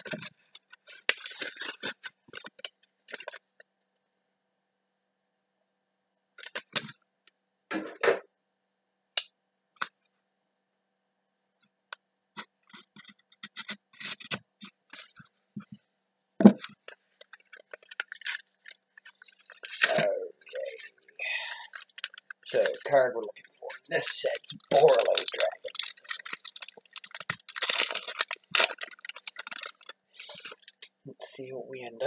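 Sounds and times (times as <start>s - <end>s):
foil wrapper crinkling: 0.0s - 3.4s, 16.6s - 30.9s.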